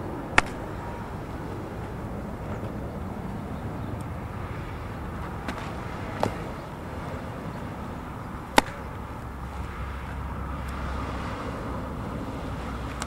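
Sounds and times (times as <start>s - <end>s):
low outdoor rumble: 0.0s - 13.0s
ball smacking into leather mitt: 0.4s - 0.7s, 5.4s - 6.7s, 8.5s - 9.1s.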